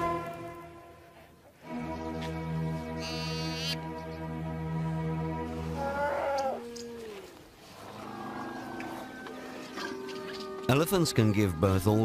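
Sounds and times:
background music of held notes: 0:00.0 - 0:12.0.

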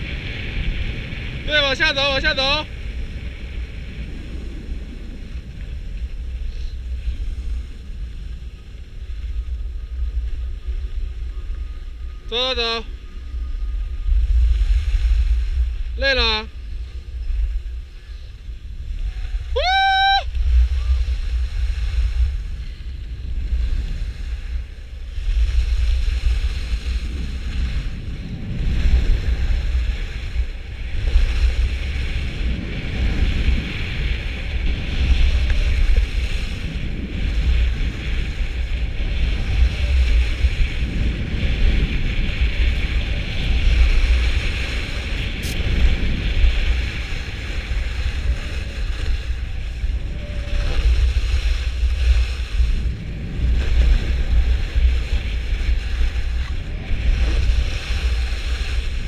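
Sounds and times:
wind gusting over microphone: 0:00.0 - 0:59.0
skis scraping on packed snow: 0:20.4 - 0:59.0.

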